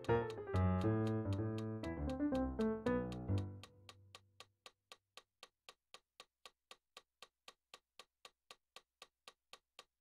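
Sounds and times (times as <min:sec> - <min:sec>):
metronome clicking: 0:00.0 - 0:10.0.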